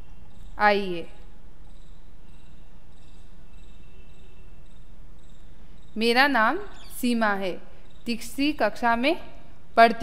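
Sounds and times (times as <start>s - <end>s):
insect chirping: 0.0s - 8.4s
low background hum: 0.0s - 10.0s.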